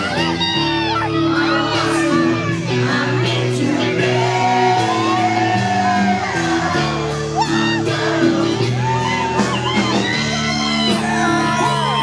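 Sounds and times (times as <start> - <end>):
woman singing and shouting: 0.0 - 3.3
live rock band: 0.0 - 12.0.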